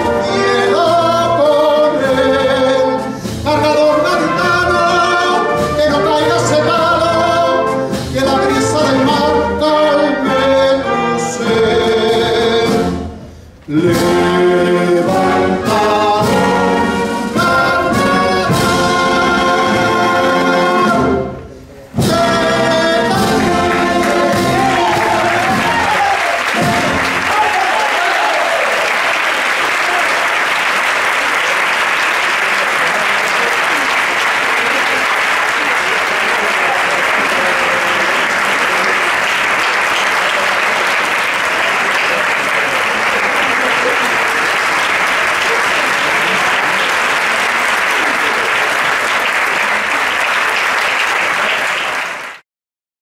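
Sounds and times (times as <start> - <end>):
audience applause: 22.8 - 52.4.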